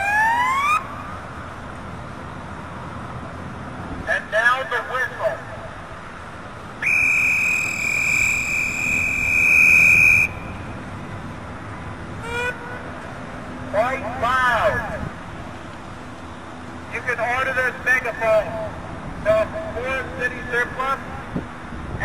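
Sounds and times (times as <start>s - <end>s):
megaphone whistle tone: 6.8s - 10.5s.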